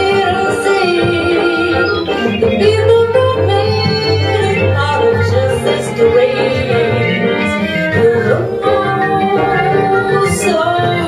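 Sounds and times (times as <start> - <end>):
piano: 0.0 - 11.0
upright bass walking: 0.0 - 11.0
violin: 0.0 - 11.0
woman singing: 0.0 - 11.0.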